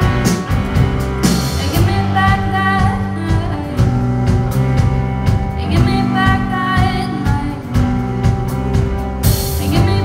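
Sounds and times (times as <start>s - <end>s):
live rock band playing: 0.0s - 10.0s.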